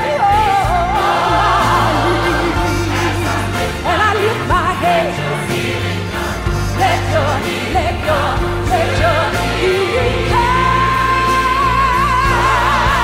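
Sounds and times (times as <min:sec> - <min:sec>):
piano: 0:00.0 - 0:13.0
woman singing with vibrato: 0:06.9 - 0:13.0.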